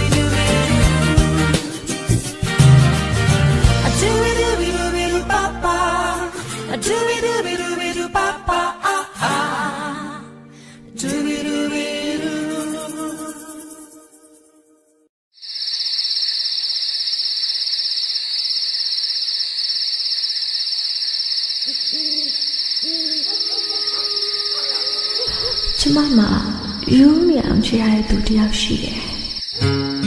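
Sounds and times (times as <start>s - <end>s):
low guitar music: 0.0s - 8.1s, 29.6s - 30.0s
high cricket trill: 15.4s - 30.0s
owl hoots: 21.6s - 26.9s.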